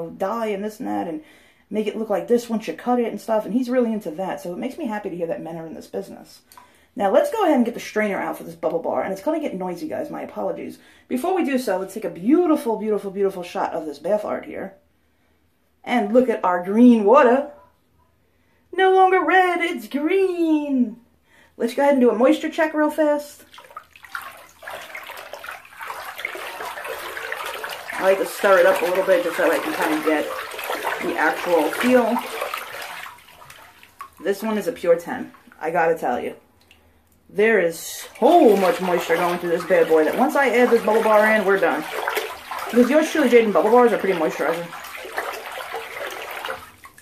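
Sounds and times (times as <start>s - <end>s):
hand stirring bathwater: 23.3s - 47.0s
small water splashes: 23.4s - 37.0s, 37.8s - 47.0s.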